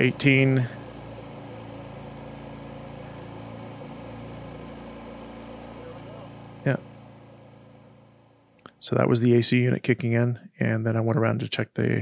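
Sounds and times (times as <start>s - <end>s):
generators engine hum: 0.0s - 10.0s.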